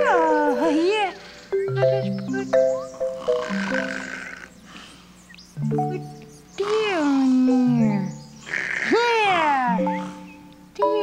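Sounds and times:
background music with held notes: 0.0 - 4.7, 5.5 - 8.5, 9.7 - 11.0.

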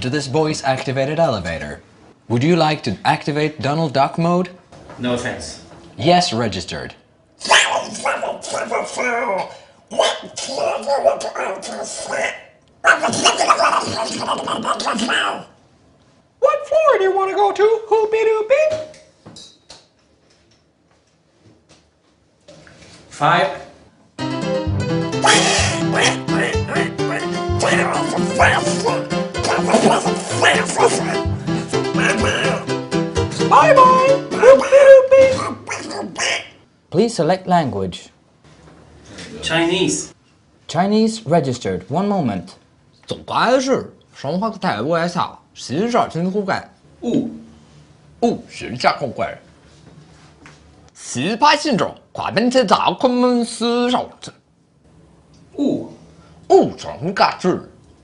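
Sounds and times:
gargling duck-like cartoon voice: 7.4 - 15.6, 25.2 - 31.3, 31.9 - 32.7, 34.4 - 36.6.

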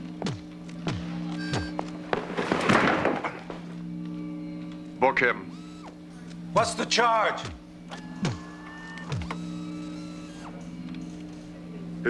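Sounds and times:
steady electrical hum: 0.0 - 12.0
short motorised whirrs: 5.5 - 6.0, 7.9 - 11.2.

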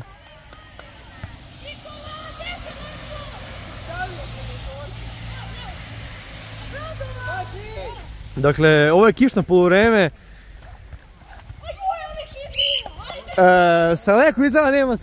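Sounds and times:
car driving past on wet road: 0.6 - 10.1.

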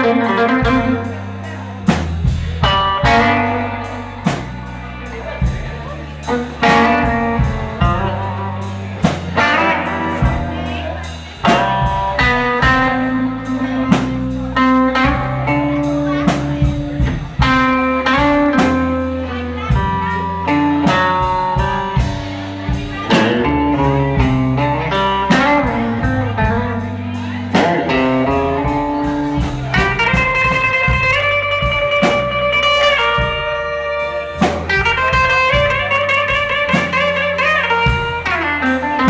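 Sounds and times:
bass: 0.0 - 39.0
drum kit: 0.0 - 39.0
electric guitar lead lines: 0.0 - 39.0.

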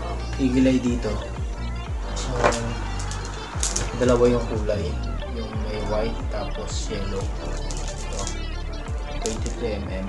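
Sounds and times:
background music with low beat: 0.0 - 10.0
small bulbs and wires rattling: 7.4 - 8.4.

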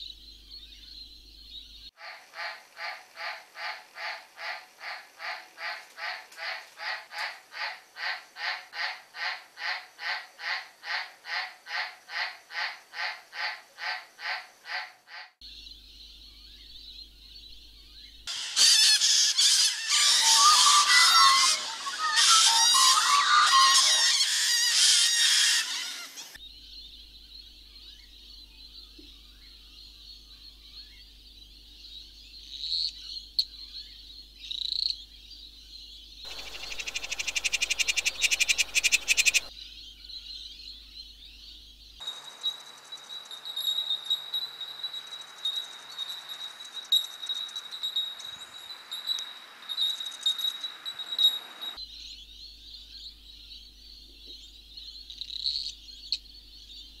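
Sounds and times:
dense burst of animal calls: 18.3 - 26.4, 36.3 - 39.5
repeating animal call: 18.3 - 26.4, 36.3 - 39.5.

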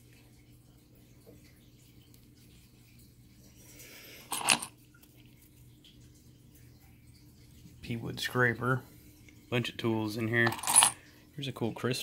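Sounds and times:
stones clinking together: 4.3 - 4.7.

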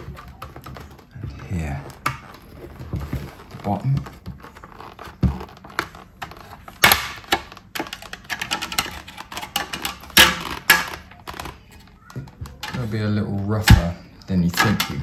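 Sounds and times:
hard plastic clicking and creaking: 0.0 - 15.0.

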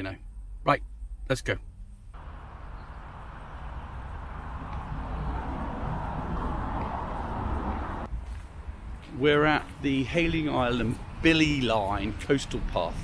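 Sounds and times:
road and engine noise in car: 0.0 - 13.0.

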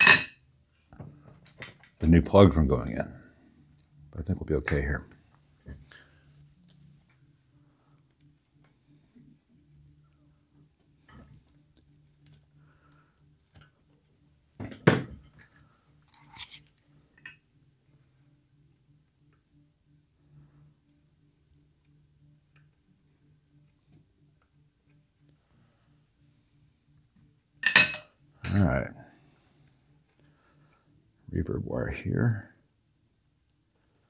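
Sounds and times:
faint steady low hum: 0.0 - 34.0.

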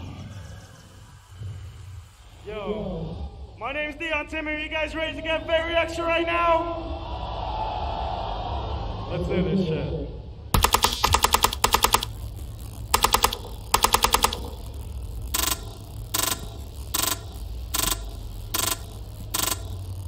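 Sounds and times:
machine gun sound effect bursts: 10.6 - 20.0
short even electronic pulses: 10.6 - 20.0.

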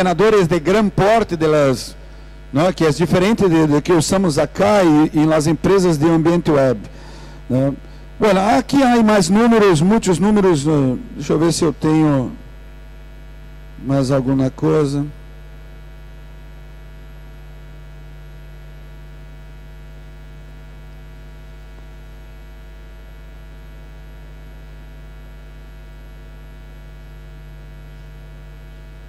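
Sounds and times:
electrical mains hum: 0.0 - 29.0.

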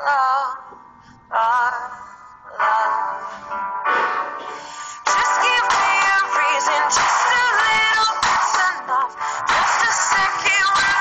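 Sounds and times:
acoustic guitar: 3.3 - 11.0
woman singing with vibrato: 5.0 - 11.0.

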